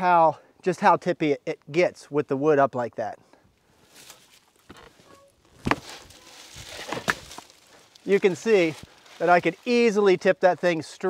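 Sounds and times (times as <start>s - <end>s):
boots crunching in dry leaves: 5.6s - 10.0s.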